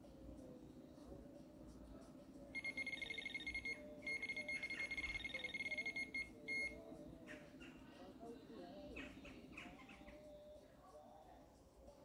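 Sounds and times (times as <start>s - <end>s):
bite alarm rapid beeps: 2.6s - 6.8s.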